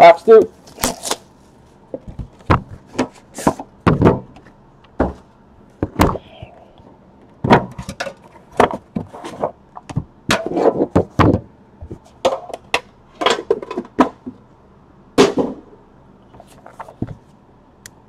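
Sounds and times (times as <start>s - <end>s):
boxes knocking on tabletop: 3.9s - 4.3s
boxes scraping on table: 9.0s - 9.6s.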